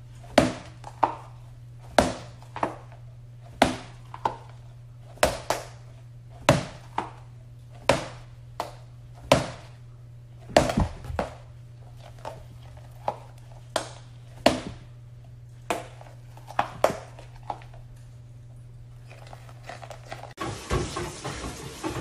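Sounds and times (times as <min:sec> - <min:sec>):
steady low hum: 0:00.0 - 0:20.4.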